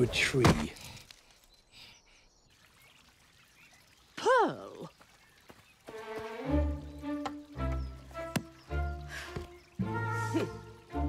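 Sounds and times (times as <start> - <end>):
faint outdoor nature ambience: 0.0 - 11.0
faint chirps: 0.7 - 5.7.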